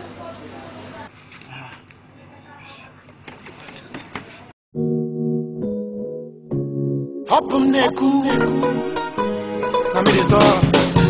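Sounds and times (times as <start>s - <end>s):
loud music: 4.8s - 11.0s.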